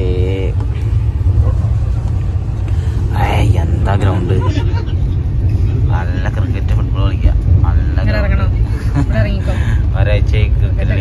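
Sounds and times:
train coach rumbling on track: 0.0 - 11.0.

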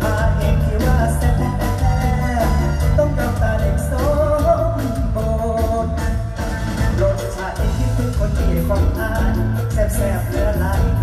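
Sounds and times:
live band music through loudspeakers: 0.0 - 11.0.

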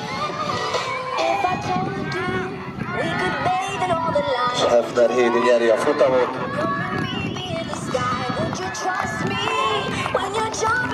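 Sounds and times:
people's voices: 1.0 - 10.9.

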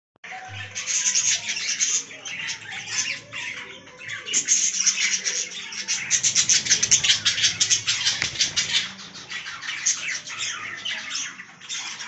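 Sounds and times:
finches chirping: 0.5 - 12.0.

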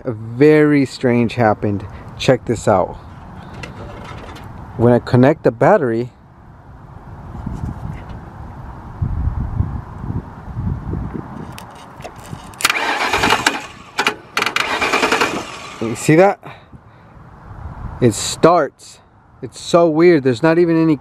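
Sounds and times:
car starter cranking engine: 12.0 - 16.1.

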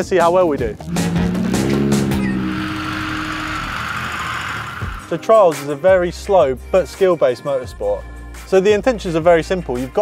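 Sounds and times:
background music: 0.0 - 10.0
car engine revving: 0.8 - 5.2.

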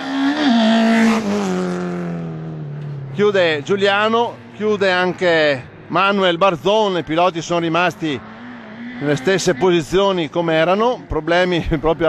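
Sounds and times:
race car passing at speed: 0.0 - 3.6, 4.2 - 12.0.

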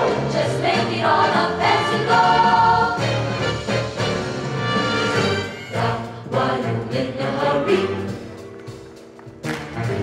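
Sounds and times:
choir singing: 0.0 - 3.5, 5.2 - 8.3
big-band swing music: 0.0 - 10.0.

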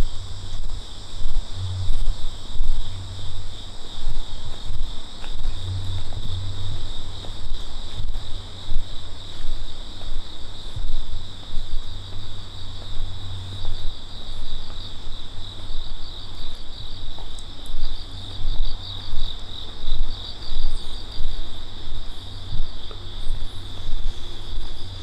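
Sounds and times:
crickets chirring: 0.0 - 25.0
low pulsing rumble: 0.0 - 25.0.

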